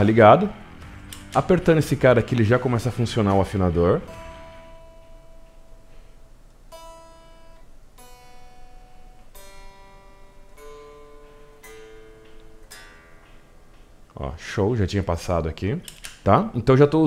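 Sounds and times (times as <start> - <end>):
electric guitar single notes: 0.0 - 15.9.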